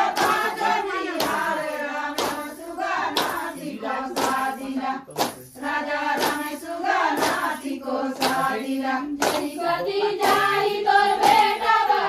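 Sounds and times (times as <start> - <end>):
people clapping together: 0.0 - 12.0
women singing folk song in unison: 0.0 - 12.0.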